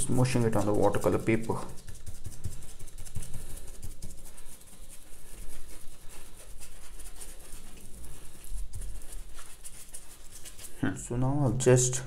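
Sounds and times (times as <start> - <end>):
brush tapping and scratching paper: 0.0 - 11.7.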